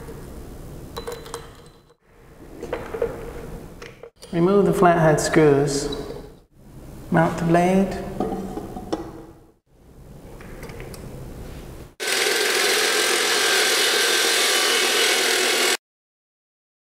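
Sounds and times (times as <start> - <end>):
concrete saw grinding with whine: 12.0 - 15.8.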